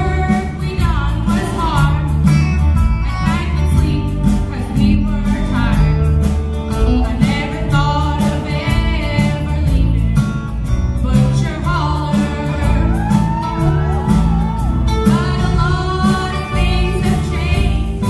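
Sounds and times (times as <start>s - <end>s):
girl singing into microphone: 0.0s - 2.3s, 11.0s - 14.1s, 15.0s - 18.0s
drums: 0.0s - 18.0s
electric bass guitar: 0.0s - 18.0s.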